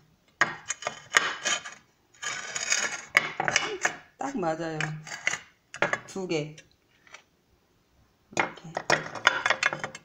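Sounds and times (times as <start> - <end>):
ceramic grating scrapes: 0.6 - 4.0.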